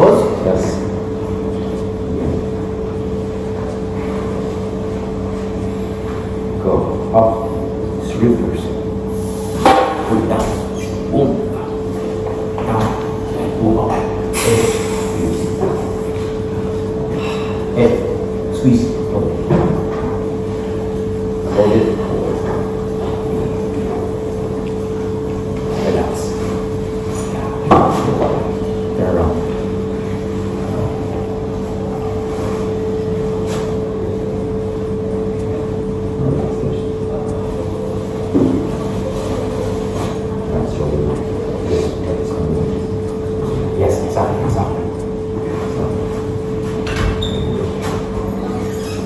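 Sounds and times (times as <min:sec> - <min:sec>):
steady hum: 0:00.0 - 0:49.0.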